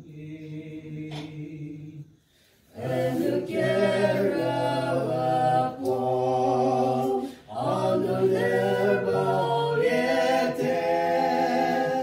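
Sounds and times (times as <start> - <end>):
group singing a hymn: 0.0 - 12.0.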